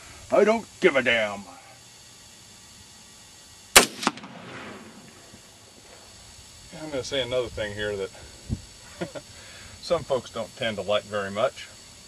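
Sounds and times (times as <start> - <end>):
rifle shot with echo: 3.8 - 5.3
weaker crack: 3.8 - 5.9.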